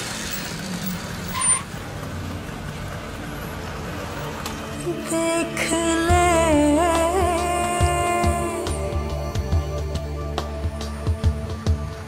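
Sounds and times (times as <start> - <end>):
traffic engines rumbling: 0.0 - 12.0.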